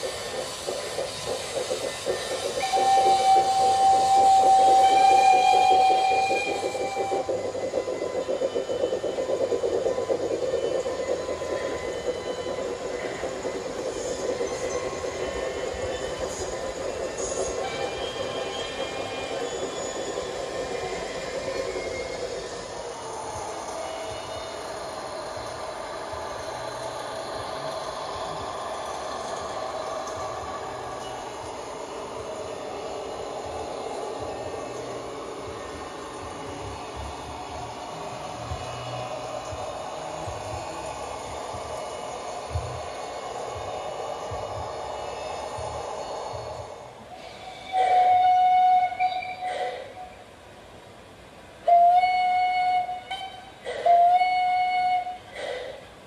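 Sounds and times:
model train wheels rumbling on rail: 0.0s - 56.0s.

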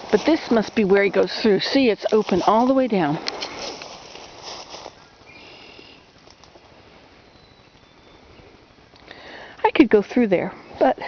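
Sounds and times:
person speaking: 0.0s - 3.2s
footsteps in dry leaves: 0.0s - 7.0s.

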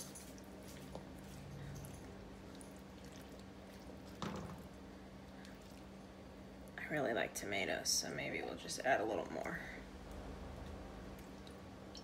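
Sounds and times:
wet squishing of tomatoes: 0.0s - 6.8s, 9.4s - 12.0s
low steady hum: 0.0s - 12.0s.

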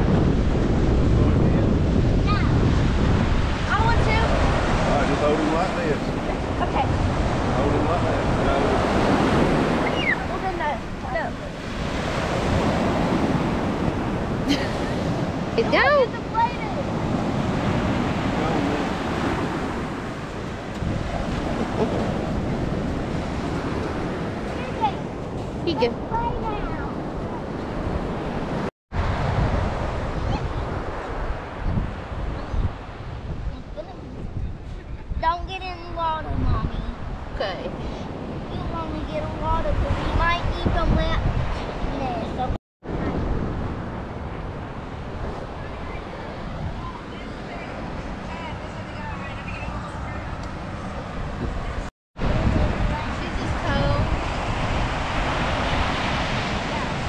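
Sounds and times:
ocean surf breaking: 0.0s - 34.4s, 35.8s - 57.0s
wind on microphone: 0.0s - 57.0s.

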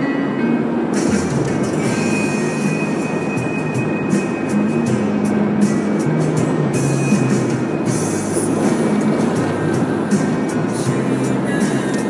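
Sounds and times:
music from car stereo: 0.0s - 12.0s
road and tyre noise in car: 0.0s - 12.0s.

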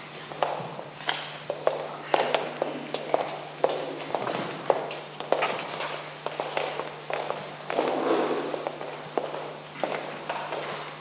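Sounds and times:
steady low hum: 0.0s - 11.0s
footsteps: 0.2s - 10.9s.

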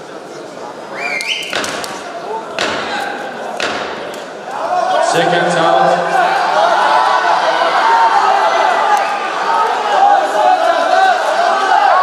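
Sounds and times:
voices in large hall: 0.0s - 12.0s
sharp knocks: 1.5s - 4.2s.

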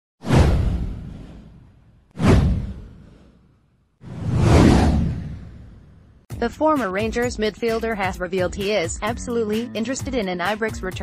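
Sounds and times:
deep boom: 0.2s - 3.2s, 4.1s - 6.2s
whoosh: 0.2s - 6.3s.

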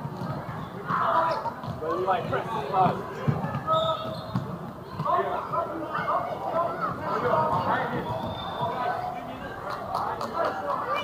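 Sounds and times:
voices calling out in a hall: 0.0s - 11.0s.

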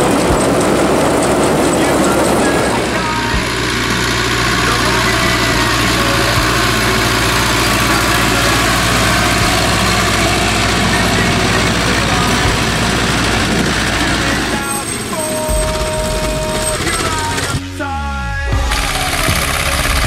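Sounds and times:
small tractor diesel engine: 0.0s - 20.0s
tractor pulling a baler: 0.0s - 20.0s.

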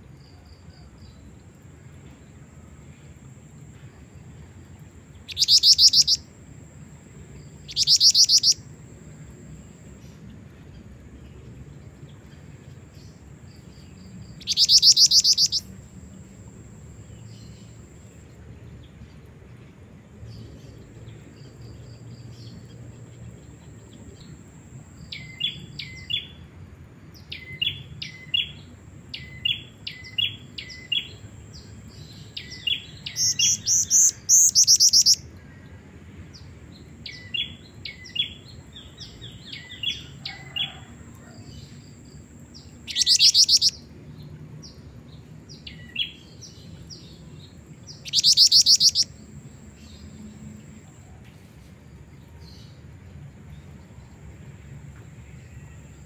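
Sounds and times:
bird high chirps: 5.3s - 6.2s, 7.6s - 8.6s, 14.4s - 15.7s, 32.4s - 35.2s, 42.7s - 43.8s, 47.9s - 49.2s
bird loud rapid trills: 14.4s - 15.7s.

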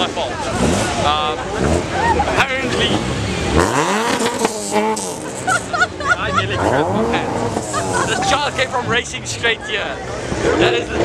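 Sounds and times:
car engine revving: 0.0s - 11.0s.

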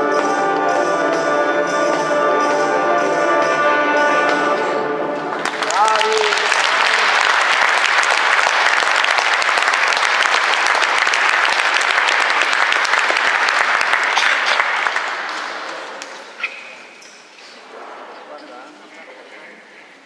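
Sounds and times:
audience applause: 5.2s - 16.3s.

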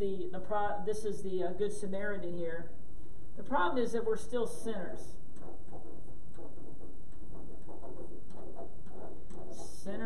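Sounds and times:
marker squeaking on whiteboard: 5.3s - 10.0s.

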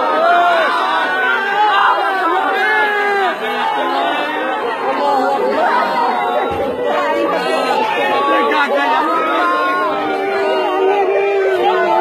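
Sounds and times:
group of people talking: 0.0s - 12.0s.

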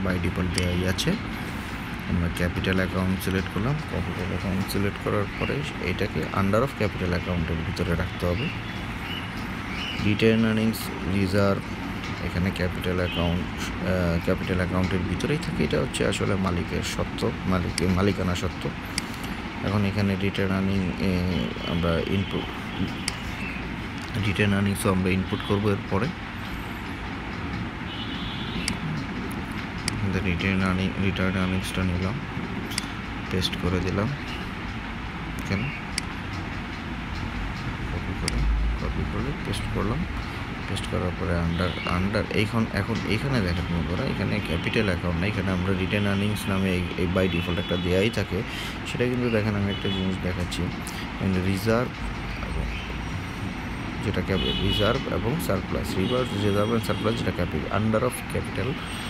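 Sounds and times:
low rumble and hiss: 0.0s - 59.0s.

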